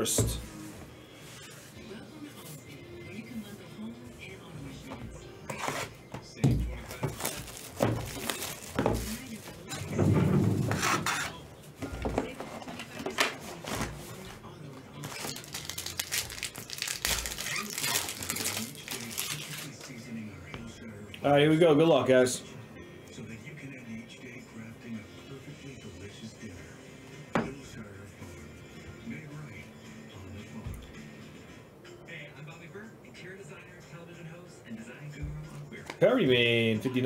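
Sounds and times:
cardboard and foil packs rustling: 0:06.7 - 0:10.0, 0:10.6 - 0:20.0
plastic wrap crinkling and tearing: 0:06.9 - 0:09.6, 0:15.0 - 0:20.0.

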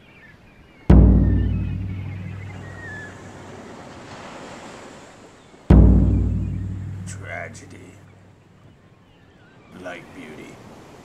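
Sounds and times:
deep booming hit: 0:00.9 - 0:03.3, 0:05.7 - 0:08.3
faint surf: 0:00.9 - 0:08.2, 0:09.7 - 0:11.0.

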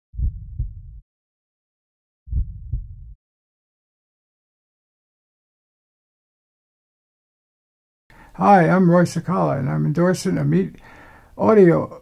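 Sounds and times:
heartbeat thumps: 0:00.2 - 0:01.0, 0:02.3 - 0:03.2.

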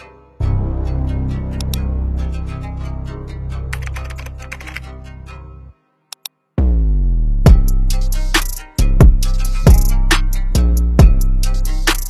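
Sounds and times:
background music: 0:00.0 - 0:12.0
computer keyboard typing: 0:03.7 - 0:04.8.

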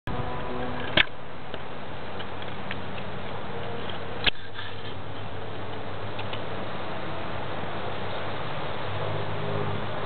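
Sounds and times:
steady background hiss: 0:00.1 - 0:10.0.

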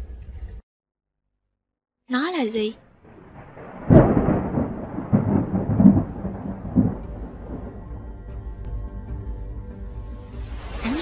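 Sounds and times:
thunderclap: 0:02.9 - 0:08.2
rolling thunder: 0:02.9 - 0:08.4.

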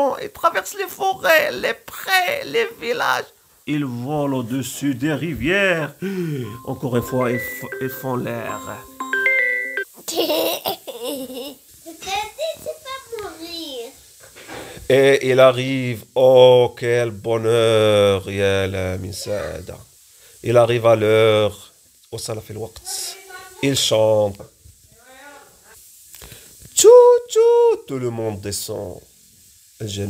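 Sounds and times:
young child talking: 0:11.8 - 0:14.0, 0:19.1 - 0:19.7, 0:22.8 - 0:23.7.

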